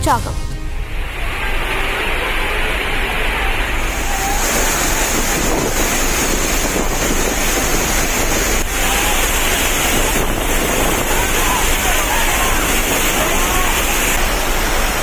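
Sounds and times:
waterfall rushing into pool: 0.7s - 15.0s.

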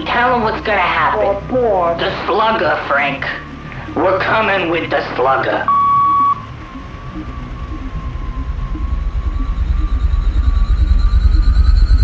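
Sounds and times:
low pulsing drone: 0.0s - 12.0s
electronic beep: 5.6s - 12.0s
thin high rising tone: 5.8s - 12.0s.

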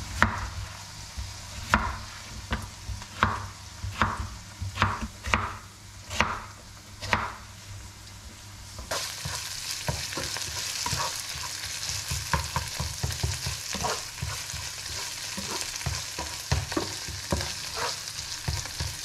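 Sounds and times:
food sizzling in a frying pan: 0.0s - 19.0s
spatula scraping and knocking pan: 8.8s - 19.0s.

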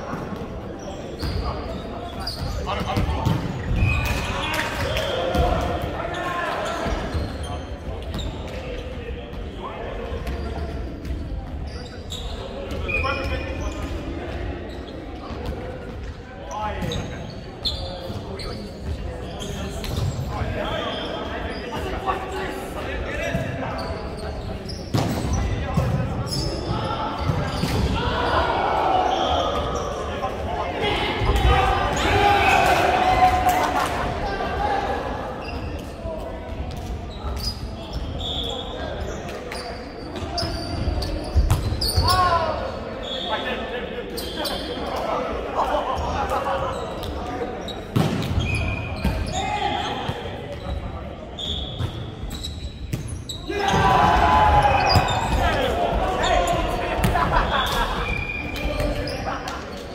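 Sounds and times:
players calling out: 25.3s - 35.9s, 53.2s - 59.8s.

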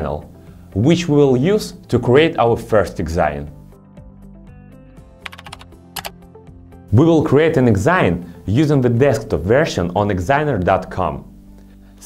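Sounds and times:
soft background music: 0.0s - 12.0s
keyboard key clicks: 5.2s - 6.1s.

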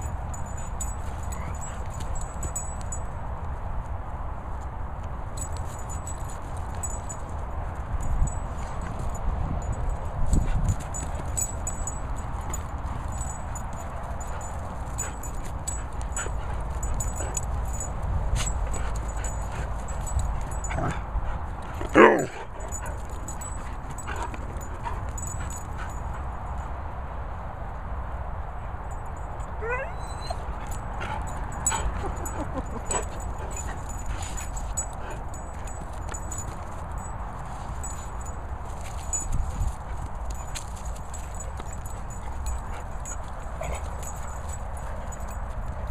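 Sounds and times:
dog yelping: 21.9s - 22.5s, 29.6s - 30.6s
dog whining: 29.6s - 30.6s
dogs scuffling on grass: 30.4s - 45.9s.

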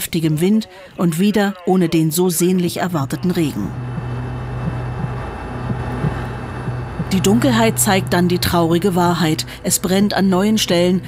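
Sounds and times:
steady low drone: 3.2s - 11.0s.

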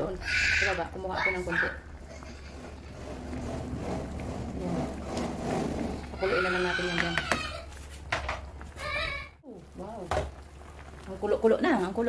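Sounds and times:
soup bubbling: 0.0s - 12.0s
wooden spoon scraping pan: 2.0s - 8.2s.

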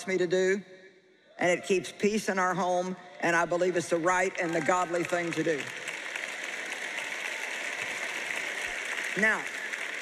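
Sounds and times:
audience applauding: 3.2s - 10.0s.

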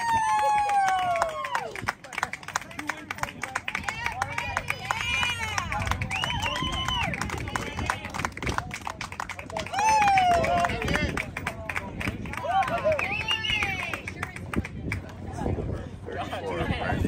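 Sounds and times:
players shouting and cheering: 0.0s - 8.1s, 9.5s - 11.3s, 12.1s - 14.0s.

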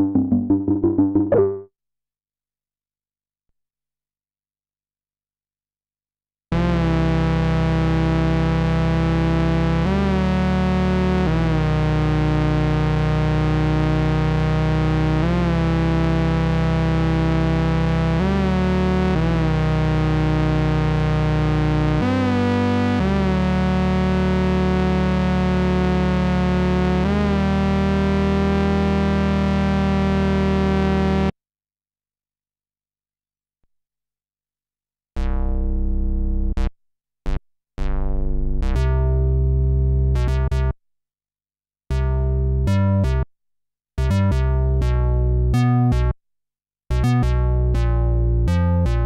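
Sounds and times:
synthesizer playing long low notes: 0.0s - 1.7s.

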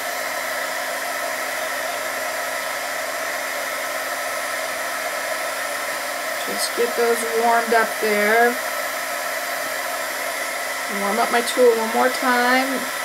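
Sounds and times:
heat gun blowing hot air: 0.0s - 13.0s.

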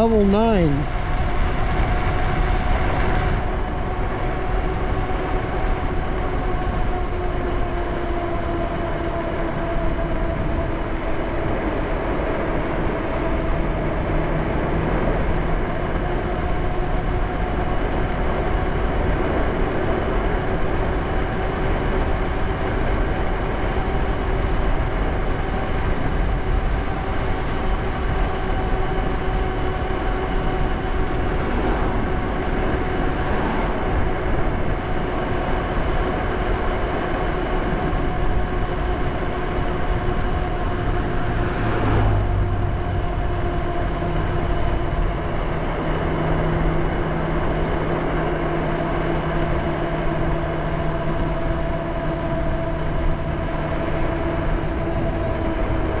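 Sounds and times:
lower hum: 0.0s - 5.3s, 16.6s - 56.0s
wind buffeting microphone: 0.8s - 56.0s.

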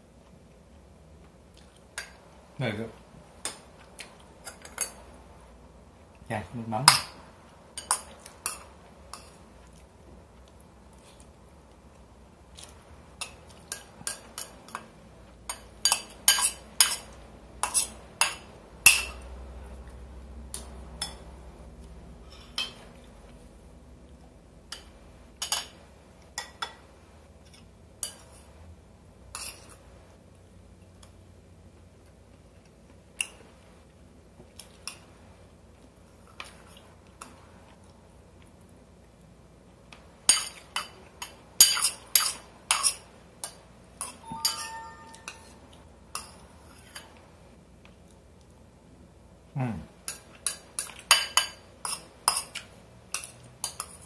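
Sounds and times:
spoon clinking on ceramic bowl: 44.0s - 46.4s.

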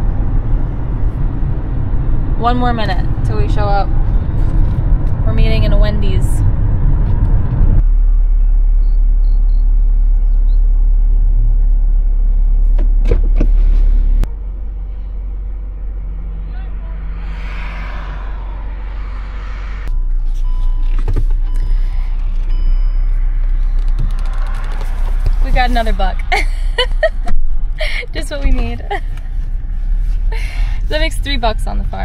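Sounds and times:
car engine idling: 0.0s - 32.0s.

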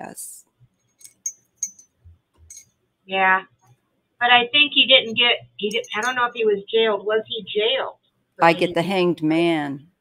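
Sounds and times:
faint metallic clinks: 0.8s - 2.8s, 5.7s - 6.2s.

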